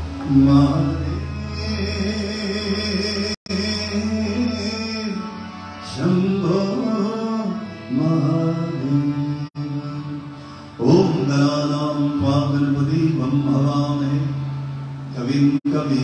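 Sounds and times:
harmonium holding notes: 0.0 - 16.0
man singing a devotional chant: 0.2 - 5.3, 5.9 - 10.2, 10.8 - 14.5, 15.2 - 16.0.

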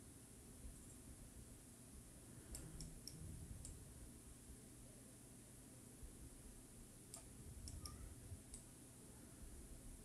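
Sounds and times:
computer mouse clicks: 2.5 - 3.8, 7.1 - 8.7.

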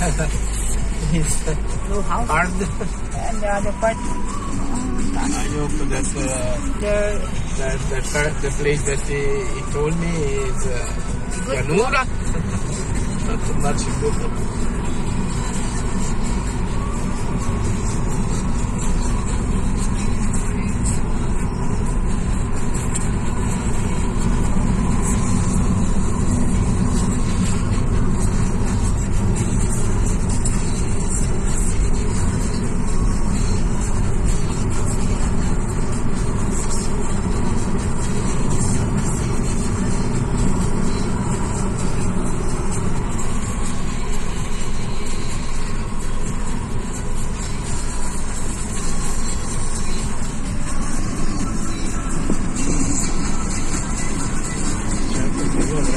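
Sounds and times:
car engine and tyre rumble: 0.0 - 55.9.

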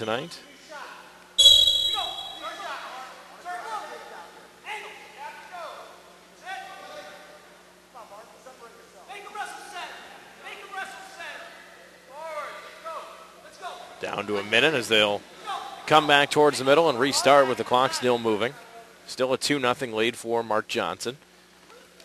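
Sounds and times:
referee's whistle blowing: 1.4 - 2.8.

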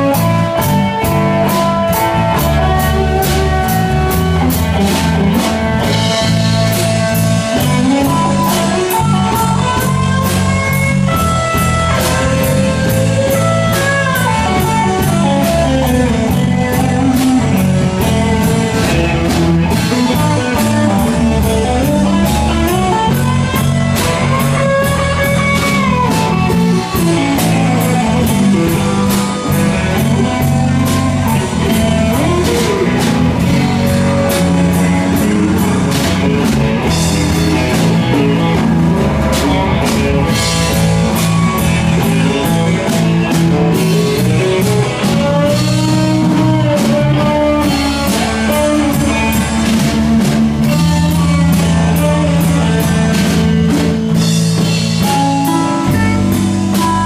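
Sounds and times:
drum kit: 0.0 - 57.0
guitars: 0.0 - 57.0.

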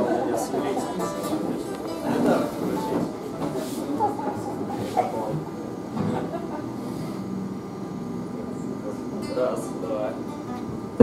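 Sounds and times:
rumbling room noise: 0.0 - 11.0.

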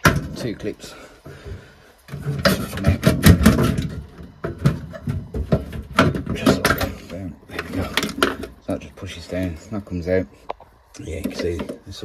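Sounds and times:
boiler casing clicks and rattles: 0.0 - 12.0.

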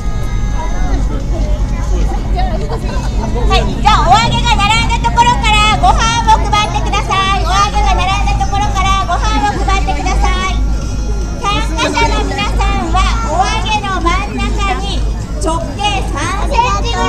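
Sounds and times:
crowd chatter: 0.0 - 17.0
steady low rumble: 0.0 - 17.0
high-pitched wavering voice: 0.1 - 15.1.

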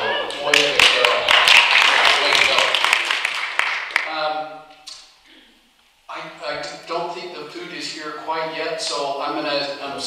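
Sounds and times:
room of people clapping: 0.2 - 4.4.

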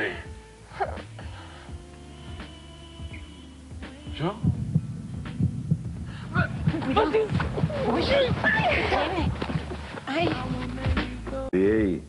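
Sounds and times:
heartbeat double beats: 0.3 - 11.5.

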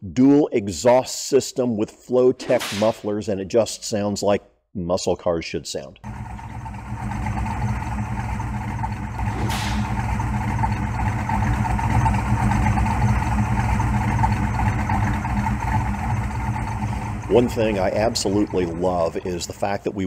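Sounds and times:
car engine idling: 6.0 - 20.0.

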